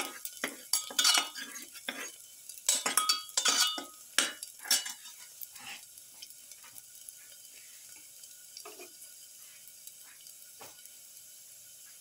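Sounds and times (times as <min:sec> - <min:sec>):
metal spoon scraping pan: 0:00.0 - 0:05.8
garlic sizzling in oil: 0:00.0 - 0:12.0.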